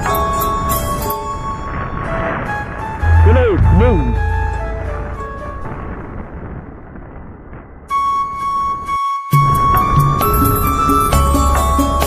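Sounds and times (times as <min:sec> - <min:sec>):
wind on microphone: 0:00.0 - 0:11.8
background music high note: 0:02.2 - 0:05.8.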